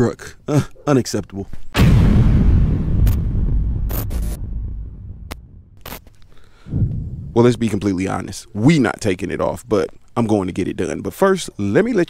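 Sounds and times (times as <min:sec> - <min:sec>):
deep boom with rumble: 0:01.8 - 0:05.8, 0:06.6 - 0:08.3.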